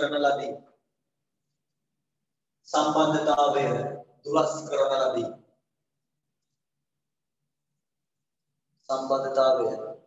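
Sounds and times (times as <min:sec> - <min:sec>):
man speaking: 0:00.0 - 0:00.6, 0:02.7 - 0:05.3, 0:08.9 - 0:09.9.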